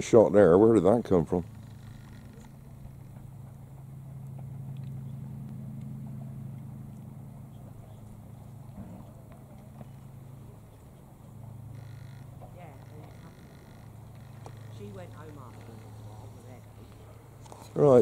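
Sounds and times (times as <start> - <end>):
low engine drone: 0.0 - 18.0.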